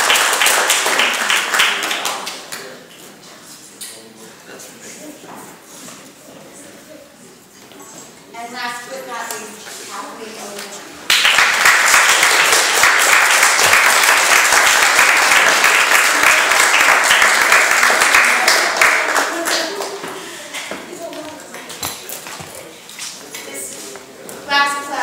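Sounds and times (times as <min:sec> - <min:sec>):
audience applauding: 0:00.0 - 0:02.7, 0:11.1 - 0:20.4.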